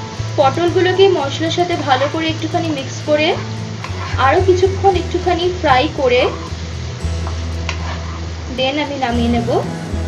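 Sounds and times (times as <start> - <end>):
vegetables sizzling in oil: 0.0 - 10.0
spatula scraping pan: 3.2 - 4.4, 7.6 - 8.3.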